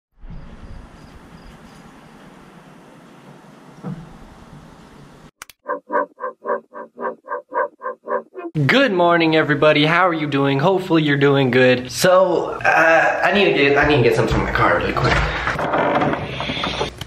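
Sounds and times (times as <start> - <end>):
pulsing pitched tone: 5.6 - 8.5.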